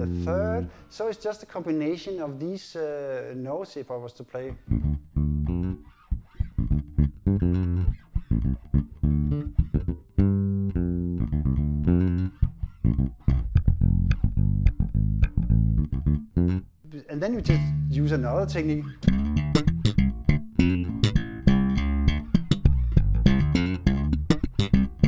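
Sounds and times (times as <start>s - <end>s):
electric bass guitar line: 0.0s - 0.8s, 4.5s - 25.0s.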